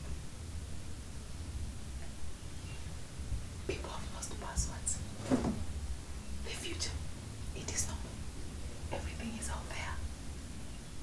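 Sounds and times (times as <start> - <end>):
low steady hum: 0.0 - 11.0
person whispering: 3.7 - 5.0, 7.6 - 8.1, 8.9 - 10.0.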